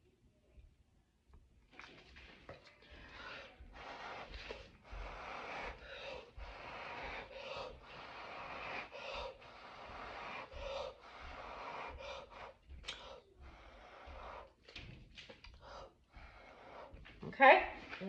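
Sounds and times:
person blowing hard by mouth: 0:03.7 - 0:14.5.

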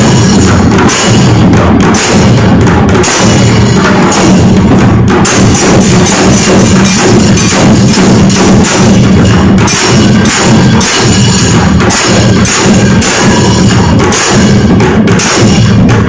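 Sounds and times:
drums played with sticks: 0:00.0 - 0:16.0
hand cymbals clashing: 0:00.0 - 0:16.0.

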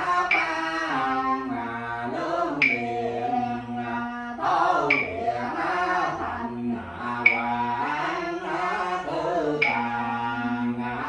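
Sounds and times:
man chanting a prayer: 0:00.0 - 0:11.0.

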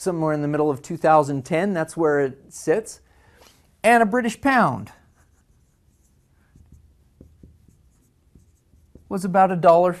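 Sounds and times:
marker writing on whiteboard: 0:04.3 - 0:10.0.

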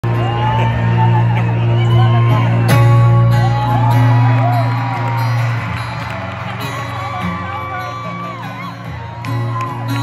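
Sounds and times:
crowd whooping and shouting: 0:00.0 - 0:10.0.

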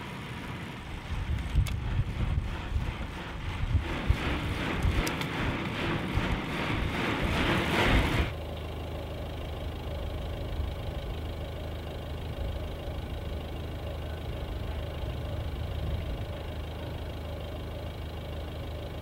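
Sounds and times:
vehicle engine humming: 0:00.0 - 0:19.0.

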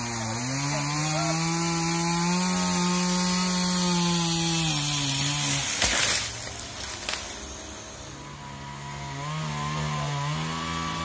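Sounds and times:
chainsaw cutting wood: 0:00.0 - 0:11.0
tree crashing to ground: 0:03.5 - 0:07.8.

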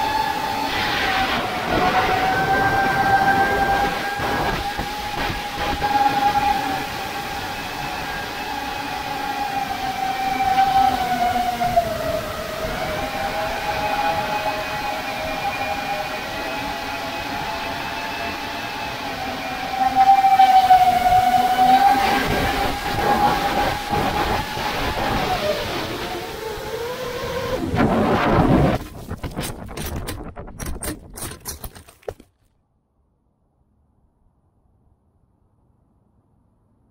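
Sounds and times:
quadcopter motors whining: 0:00.0 - 0:28.3.

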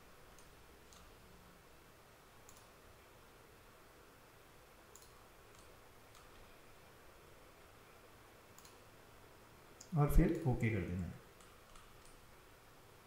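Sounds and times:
computer mouse clicks: 0:00.3 - 0:01.2, 0:02.4 - 0:02.8, 0:04.9 - 0:06.5, 0:08.5 - 0:08.8, 0:11.4 - 0:12.2.

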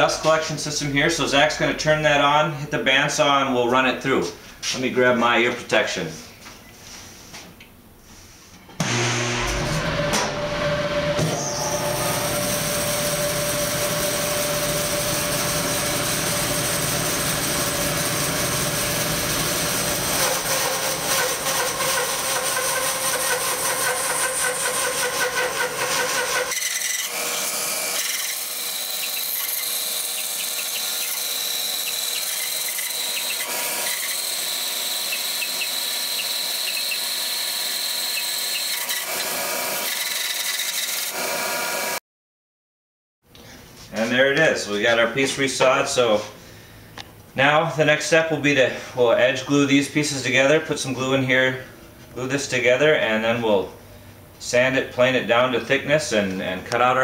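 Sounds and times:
dust collector running: 0:08.8 - 0:26.3
bandsaw cutting wood: 0:08.8 - 0:42.0.

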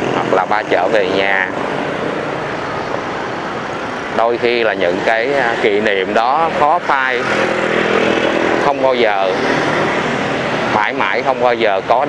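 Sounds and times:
motorbikes and cars passing: 0:00.0 - 0:12.0.

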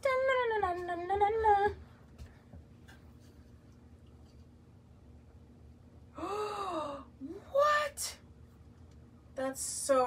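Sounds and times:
woman sighing breathily: 0:06.1 - 0:07.1.

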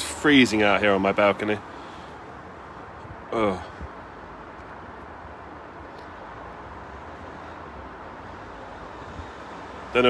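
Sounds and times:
distant city traffic rumble: 0:00.0 - 0:10.0.

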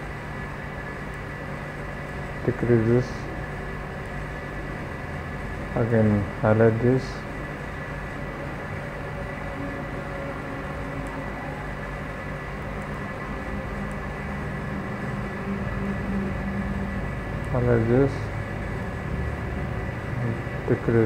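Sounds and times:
low mechanical hum with hiss: 0:00.0 - 0:21.0.

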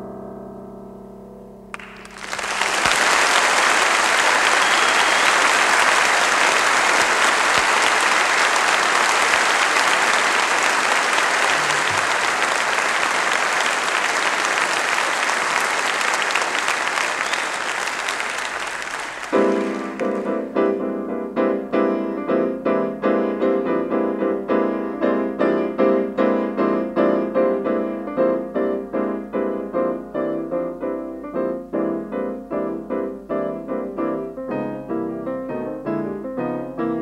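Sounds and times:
audience applauding: 0:01.8 - 0:20.6
piano chord: 0:19.3 - 0:37.0.

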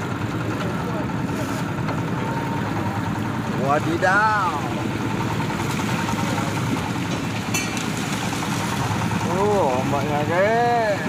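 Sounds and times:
boat engine rumbling: 0:00.0 - 0:11.0.

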